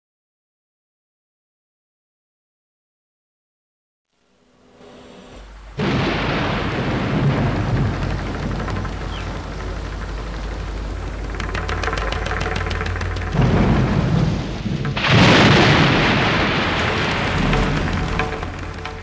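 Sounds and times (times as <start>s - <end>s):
fine crackling: 4.2s - 19.0s
steady rushing noise: 4.2s - 19.0s
low rumble: 4.4s - 19.0s.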